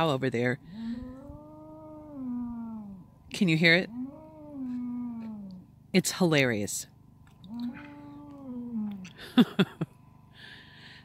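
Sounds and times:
bull bellowing: 0:03.7 - 0:05.6, 0:07.4 - 0:09.2.

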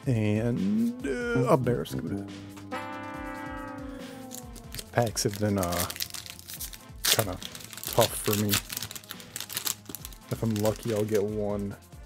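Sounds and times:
long tone sinking in pitch: 0:00.5 - 0:05.0
cards and foil pack crinkling: 0:04.2 - 0:11.3.

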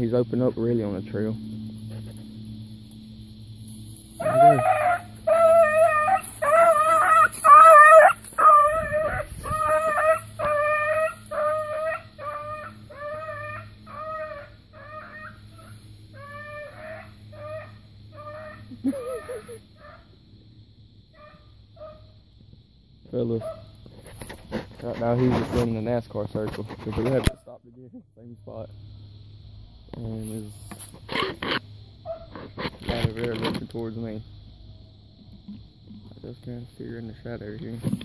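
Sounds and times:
hound baying: 0:04.2 - 0:20.2, 0:21.1 - 0:22.2, 0:23.4 - 0:23.8, 0:32.0 - 0:32.5.

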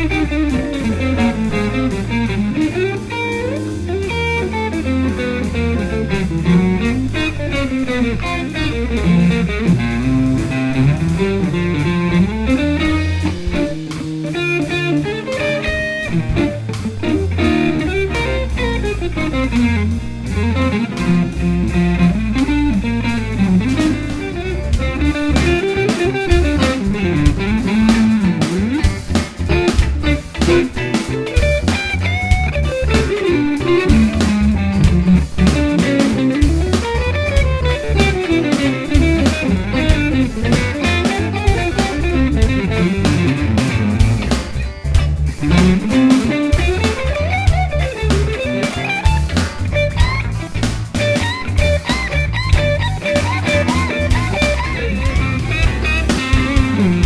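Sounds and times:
drums and bass backing track: 0:00.0 - 0:57.0
electric guitar blues lead: 0:00.0 - 0:57.0.

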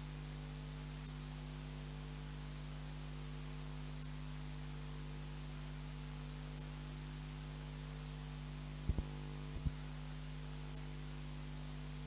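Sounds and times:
electrical mains hum: 0:00.0 - 0:12.0
short low thumps: 0:08.9 - 0:09.8.

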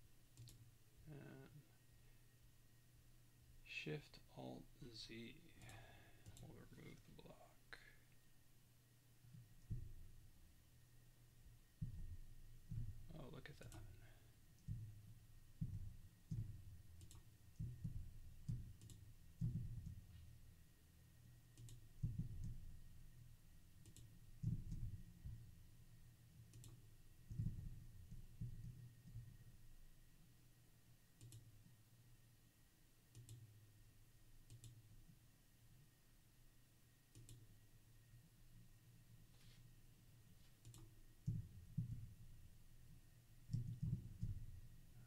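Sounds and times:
faint low hum: 0:00.0 - 0:45.0
computer mouse clicks: 0:00.3 - 0:00.7, 0:15.7 - 0:20.0, 0:21.5 - 0:22.6, 0:23.8 - 0:25.0, 0:26.5 - 0:29.2, 0:31.2 - 0:31.5, 0:33.1 - 0:33.5, 0:34.4 - 0:34.8, 0:37.1 - 0:37.5, 0:40.6 - 0:42.1, 0:43.5 - 0:44.4.

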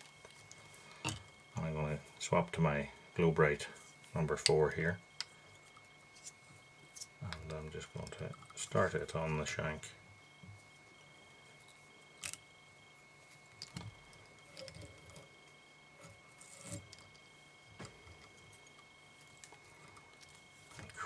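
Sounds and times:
faint steady high tone: 0:00.0 - 0:21.0.

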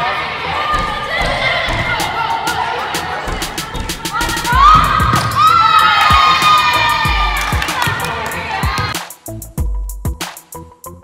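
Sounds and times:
women shouting and cheering: 0:00.0 - 0:09.0
background music: 0:00.0 - 0:11.0.

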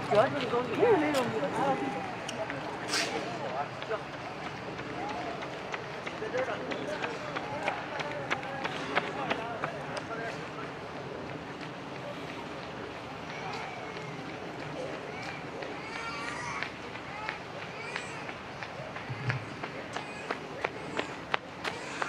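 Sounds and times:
footsteps on pavement: 0:00.0 - 0:22.0.

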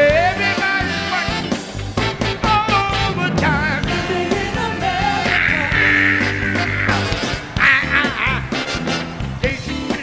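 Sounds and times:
funk soul band playing: 0:00.0 - 0:10.0.

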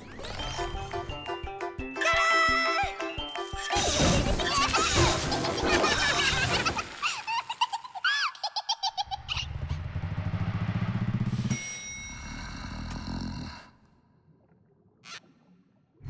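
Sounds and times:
low rumble: 0:09.2 - 0:12.2.

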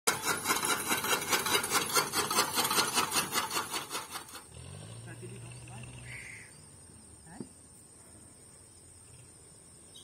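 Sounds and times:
chaff cutter clattering: 0:00.1 - 0:04.5.

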